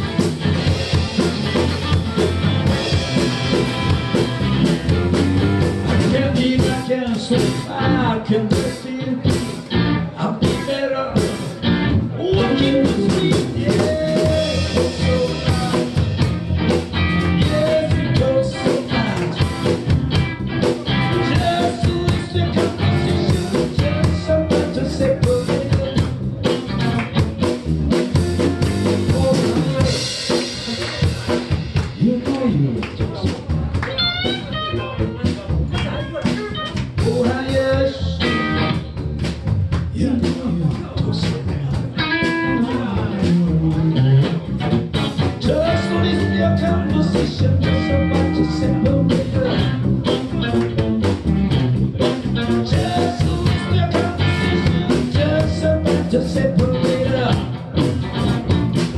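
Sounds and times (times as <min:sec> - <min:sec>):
drum kit beat: 0:00.0 - 0:58.9
electric bass: 0:00.0 - 0:58.9
electric guitar: 0:00.0 - 0:58.9.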